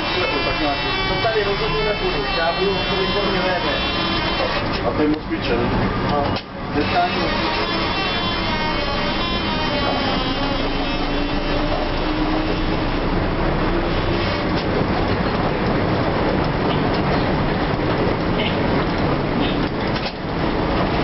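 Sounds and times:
trolleybus motor whine: 0.0s - 21.0s.

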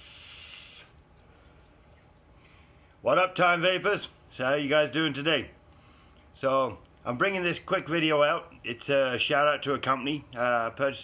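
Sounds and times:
vape draw hiss: 0.0s - 1.0s
faint breath: 0.0s - 1.8s, 2.4s - 3.0s, 5.7s - 6.3s.

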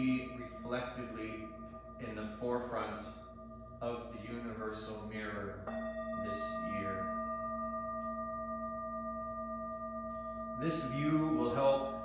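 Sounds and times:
crystal singing bowls ringing: 0.0s - 12.0s.

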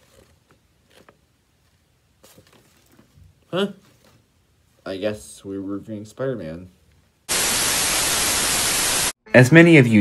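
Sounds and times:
television static hiss: 7.3s - 10.0s.

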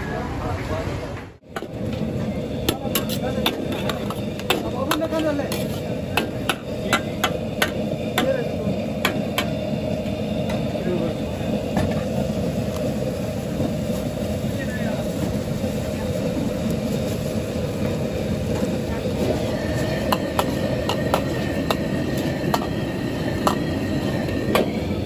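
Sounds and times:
gas burner rushing: 0.1s - 25.0s
metal ladle scraping a wok: 2.7s - 7.1s, 19.1s - 24.6s.

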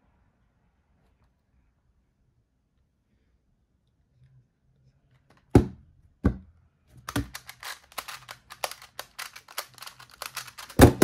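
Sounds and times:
small plastic clicks: 7.0s - 10.9s.

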